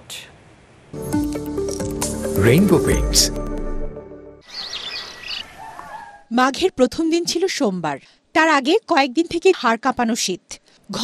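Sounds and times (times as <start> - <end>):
music track: 1.0 - 4.4
small birds chirping: 4.4 - 6.3.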